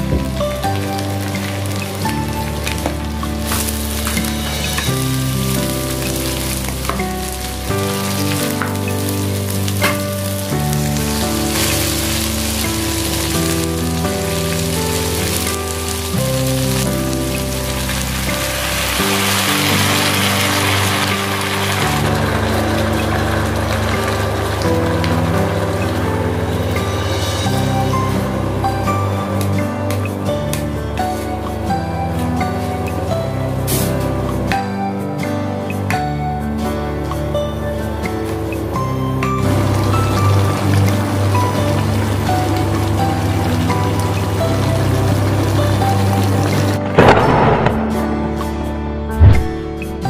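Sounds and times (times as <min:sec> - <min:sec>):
food sizzling in a pan: 0:00.0 - 0:34.5, 0:38.9 - 0:46.8
background music with bass line: 0:00.0 - 0:50.0.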